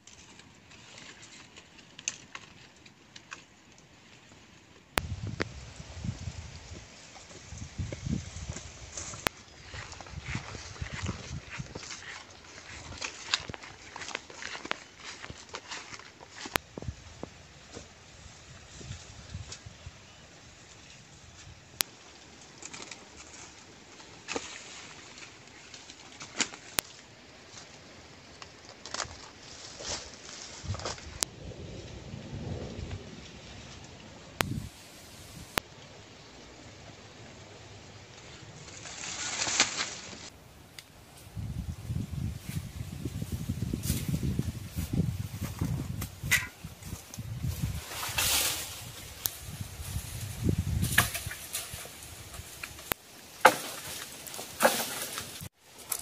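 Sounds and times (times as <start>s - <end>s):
wind buffeting microphone: 5.0s - 12.1s, 30.6s - 35.6s, 41.1s - 52.9s
footsteps on dry grass and leaves: 5.0s - 19.8s, 20.4s - 31.2s, 34.4s - 35.6s, 38.2s - 56.0s
breeze hiss: 34.4s - 41.3s.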